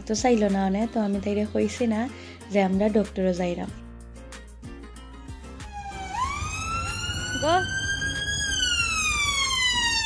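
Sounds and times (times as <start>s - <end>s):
emergency siren wailing: 5.6s - 10.0s.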